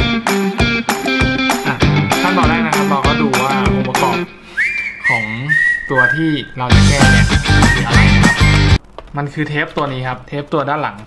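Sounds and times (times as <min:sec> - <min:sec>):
person whistling: 0:01.6 - 0:08.8.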